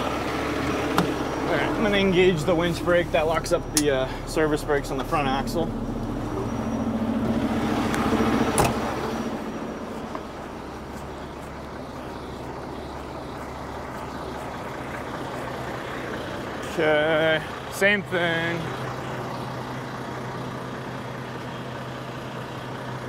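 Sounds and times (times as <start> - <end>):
diesel truck engines idling: 0.0 - 23.0
cab door shutting: 0.6 - 1.2, 7.3 - 9.2.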